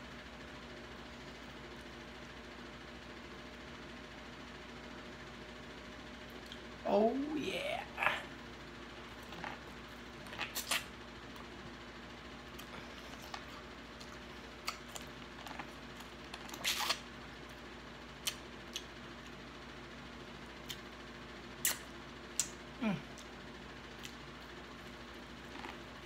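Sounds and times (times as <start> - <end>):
faint steady hum: 0.0 - 26.0
crunchy bites and mouth clicks: 9.1 - 11.5, 12.5 - 17.1, 21.6 - 24.5.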